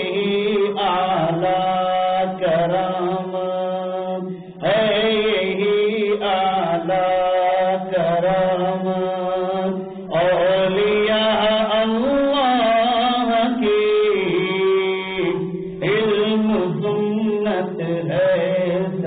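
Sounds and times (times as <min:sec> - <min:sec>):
person chanting: 0:00.0 - 0:19.0.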